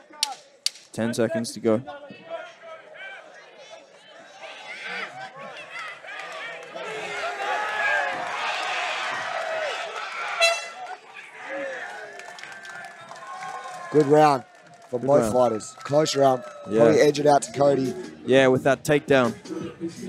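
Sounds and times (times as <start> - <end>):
crowd shouting and cheering: 0.0 - 20.0
horn blast: 10.4 - 10.9.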